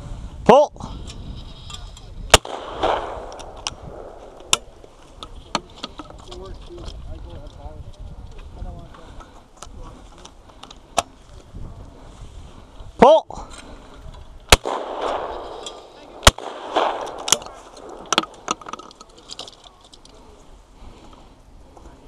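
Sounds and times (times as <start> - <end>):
shotgun shots: 2.3 - 4.7, 14.5 - 18.6
faint distant gunshots: 2.3 - 4.8, 14.5 - 18.6.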